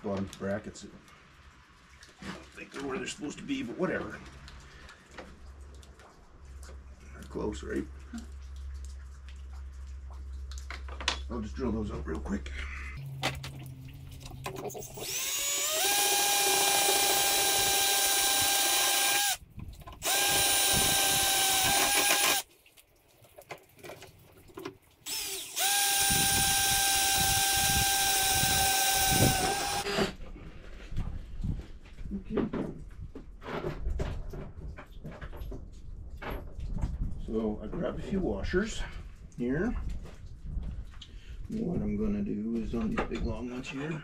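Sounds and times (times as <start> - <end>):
cordless drill boring: 14.8 - 19.4, 20.0 - 22.4, 25.1 - 30.0.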